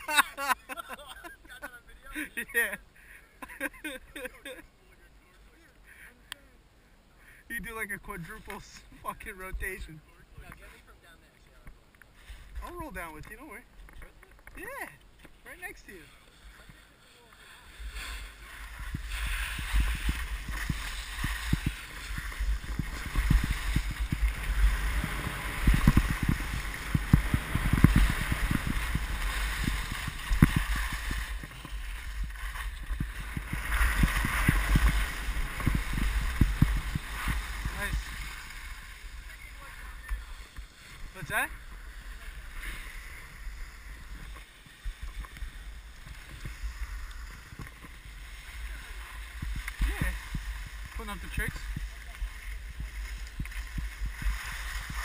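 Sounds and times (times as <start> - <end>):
skis scraping over snow: 12.2 - 55.0
wind buffeting microphone: 17.8 - 55.0.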